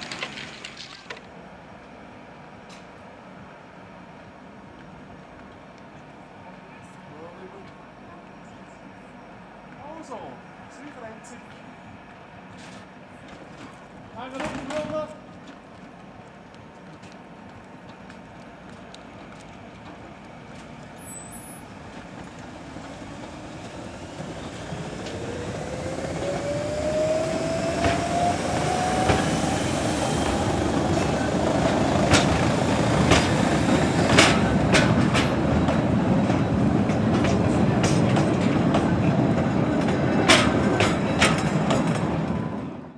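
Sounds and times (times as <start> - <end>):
wheels clicking on track: 13.3 - 42.4
electric train passing: 15.7 - 42.9.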